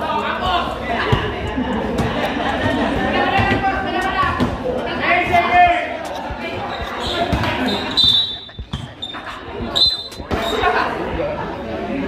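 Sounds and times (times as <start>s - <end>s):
spectator chatter: 0.0s - 12.0s
basketball bouncing on concrete: 1.0s - 4.6s, 6.0s - 7.7s, 8.4s - 9.0s
high squeaks: 6.4s - 10.7s.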